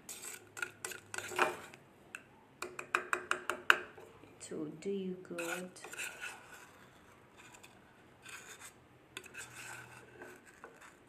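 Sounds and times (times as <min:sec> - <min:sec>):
plastic spoon tapping plastic bowl: 0:02.6 - 0:04.0.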